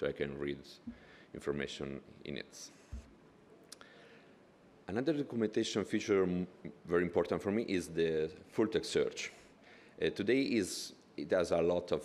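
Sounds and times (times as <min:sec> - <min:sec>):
man talking: 0:00.0 - 0:03.0, 0:04.9 - 0:12.0.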